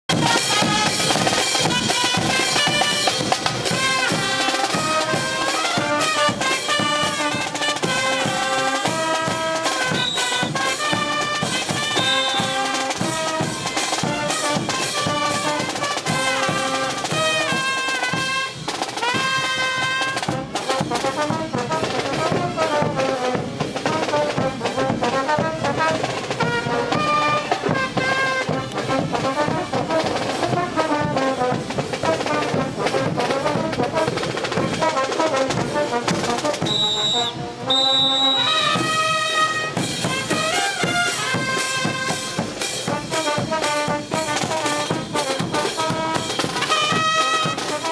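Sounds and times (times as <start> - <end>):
trumpets and trombones melody: 0.1 - 47.9.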